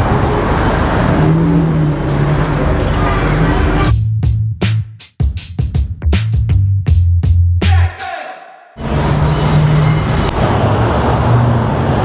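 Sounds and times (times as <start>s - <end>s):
street noise: 0.0s - 4.1s, 7.7s - 12.0s.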